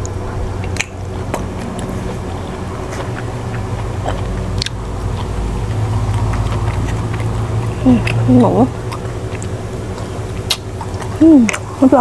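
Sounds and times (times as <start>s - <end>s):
wet mouth clicks: 0.0s - 11.8s
close-up chewing food: 0.0s - 12.0s
steady low hum: 0.0s - 12.0s.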